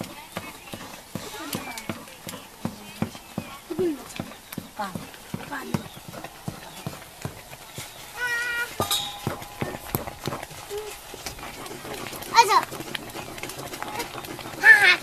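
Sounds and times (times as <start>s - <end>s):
wooden stick scraping iron pot: 0.0s - 15.0s.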